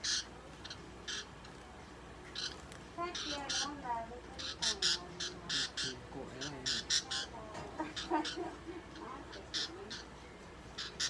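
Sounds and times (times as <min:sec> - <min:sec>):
budgerigar squawking: 0:00.0 - 0:01.4, 0:02.3 - 0:10.2, 0:10.8 - 0:11.0
budgerigar warbling chatter: 0:00.0 - 0:01.5, 0:02.3 - 0:11.0.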